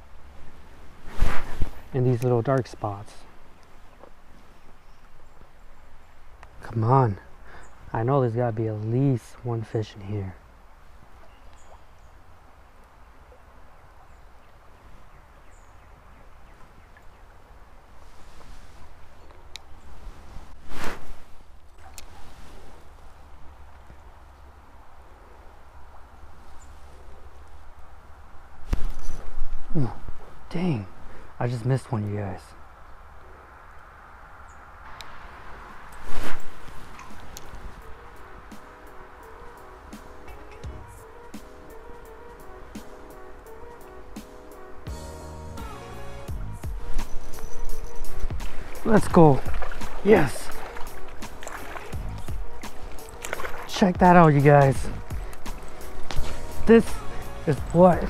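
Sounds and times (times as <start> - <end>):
clothing rustling whoosh: 0.9 - 1.9, 20.0 - 21.4, 35.5 - 37.8
flowing water hiss: 34.8 - 58.0
low thumps of footsteps: 48.1 - 58.0.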